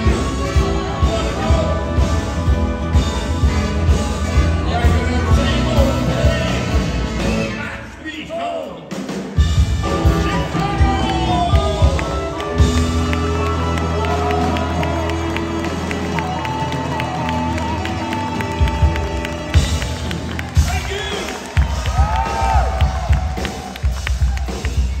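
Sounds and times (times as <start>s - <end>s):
horn section playing: 0.0s - 7.9s, 9.4s - 24.0s
drums: 0.0s - 25.0s
rhythm and blues band playing: 0.0s - 25.0s
crowd cheering: 10.0s - 25.0s.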